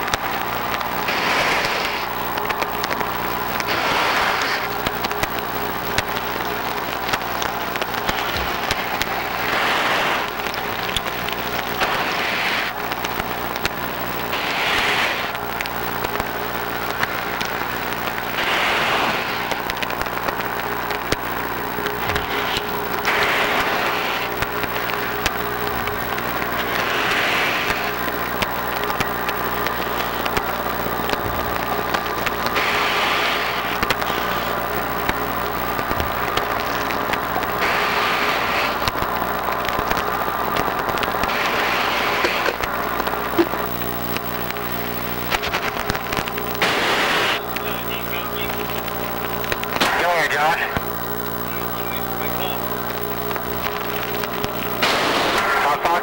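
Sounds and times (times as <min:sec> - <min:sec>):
steady machine hum: 0:00.0 - 0:56.0.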